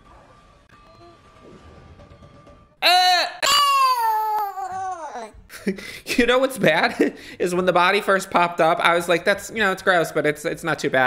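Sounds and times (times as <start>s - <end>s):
man's whining cry: 2.8s - 5.4s.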